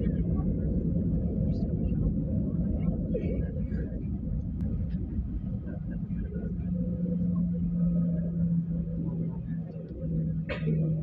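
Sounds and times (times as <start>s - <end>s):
airplane cabin rumble: 0.0s - 11.0s
steady low jet engine tone: 0.0s - 11.0s.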